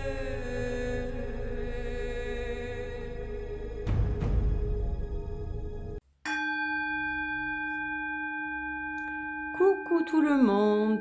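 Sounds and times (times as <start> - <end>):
singing bowl ringing: 6.2 - 11.0
person speaking: 9.6 - 11.0.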